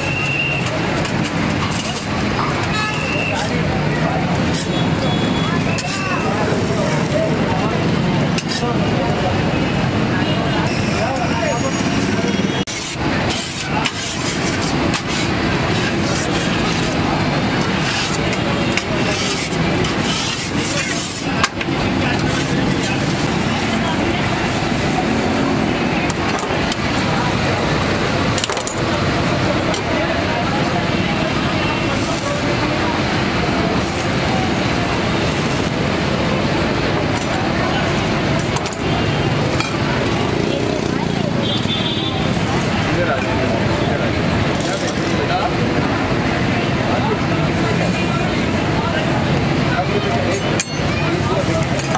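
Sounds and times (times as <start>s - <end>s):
steady traffic: 0.0s - 51.9s
steel spatula clinking on griddle: 50.3s - 51.9s.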